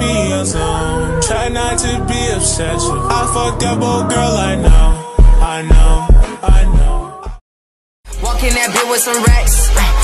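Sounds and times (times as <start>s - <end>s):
rapping over booming bass: 0.0s - 7.4s, 8.1s - 10.0s.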